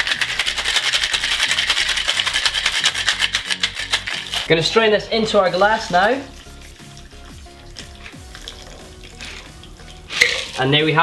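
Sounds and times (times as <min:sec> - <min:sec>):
ice rattling in cocktail shaker: 0:00.0 - 0:11.0.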